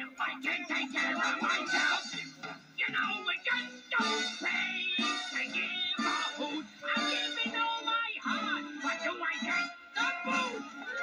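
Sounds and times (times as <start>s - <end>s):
backing music: 0.0s - 11.0s
cartoon character singing: 2.8s - 11.0s.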